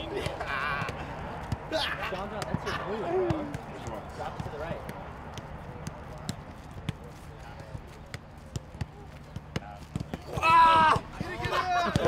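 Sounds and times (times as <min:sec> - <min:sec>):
soccer ball thuds: 0:00.0 - 0:12.0.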